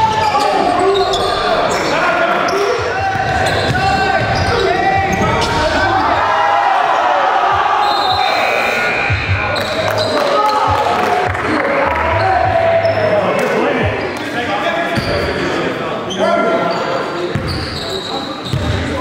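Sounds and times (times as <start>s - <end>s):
players calling and shouting: 0.0s - 19.0s.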